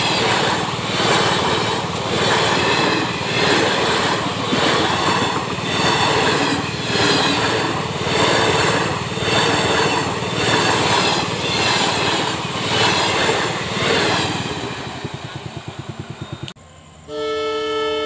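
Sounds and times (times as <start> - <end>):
train wheels on rails: 0.0 - 16.9.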